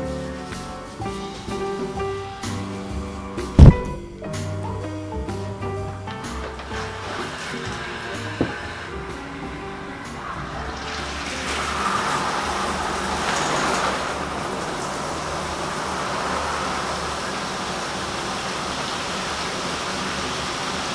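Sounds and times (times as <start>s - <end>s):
steady rushing noise: 0.0s - 20.9s.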